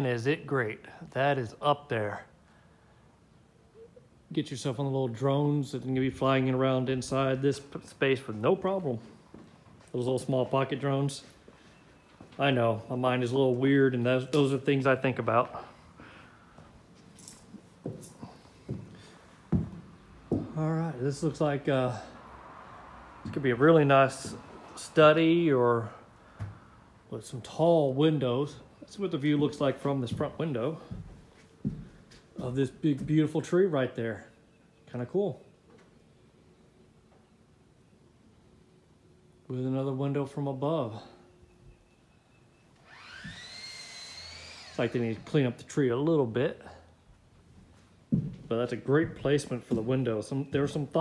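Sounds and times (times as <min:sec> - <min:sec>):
footsteps on wooden floor: 0:16.6 - 0:20.6, 0:24.1 - 0:24.5, 0:30.0 - 0:33.3, 0:47.6 - 0:49.9
power tool whining: 0:42.8 - 0:45.5.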